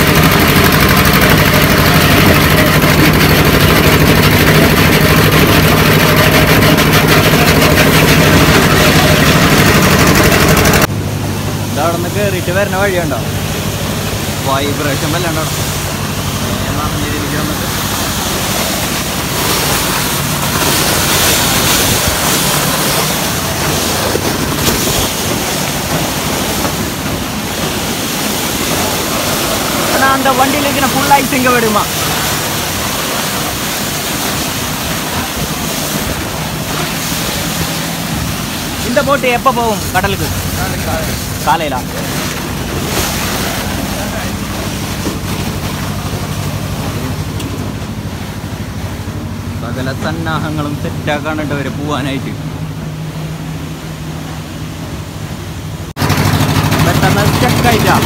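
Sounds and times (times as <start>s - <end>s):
low engine hum: 0.0s - 58.0s.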